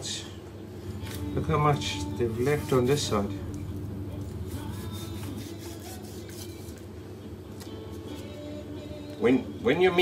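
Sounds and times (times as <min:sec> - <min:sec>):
faint music: 0:00.0 - 0:10.0
steady low hum: 0:00.0 - 0:10.0
knife scraping through raw meat: 0:04.2 - 0:06.8.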